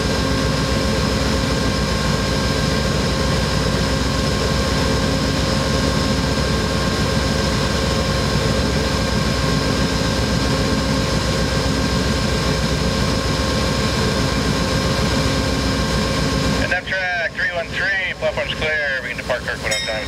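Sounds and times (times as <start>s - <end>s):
diesel locomotive idling: 0.0s - 20.0s.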